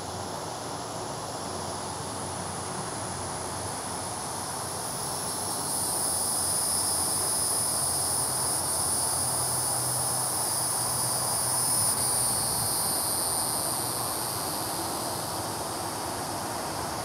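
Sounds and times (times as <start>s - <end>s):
high-pitched insect chorus: 0.0s - 17.0s.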